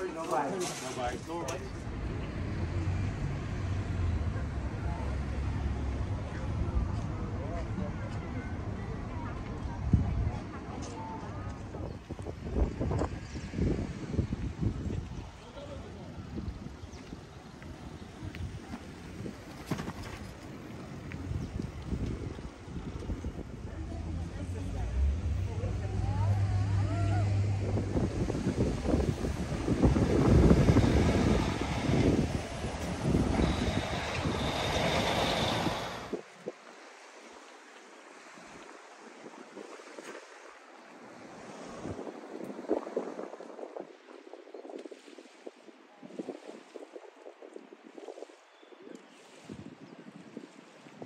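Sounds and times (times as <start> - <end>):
wind buffeting microphone: 0.0 - 36.6, 39.2 - 51.0
small irregular outdoor sounds: 0.0 - 51.0.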